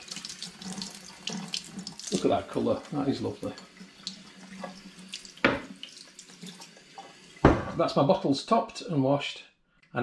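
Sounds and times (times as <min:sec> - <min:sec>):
tap water splashing on bottle: 0:04.0 - 0:07.6.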